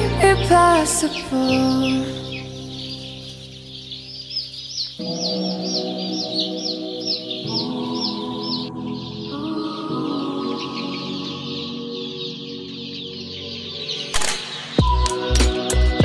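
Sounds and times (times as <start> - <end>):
chicks peeping: 0.0 - 16.0
soft sustained music: 0.0 - 16.0.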